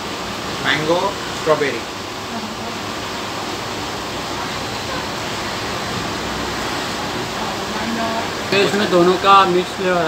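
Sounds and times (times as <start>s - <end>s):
air conditioner running: 0.0s - 10.0s.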